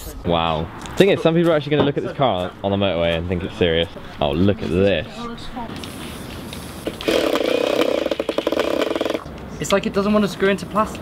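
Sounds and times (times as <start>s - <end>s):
cordless drill driving screw: 7.0s - 9.3s.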